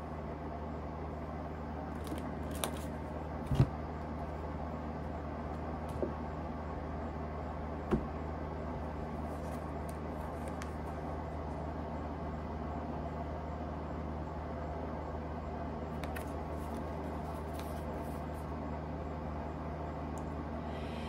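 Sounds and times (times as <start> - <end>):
steady low hum: 0.0 - 21.0
dull thump: 7.9 - 8.2.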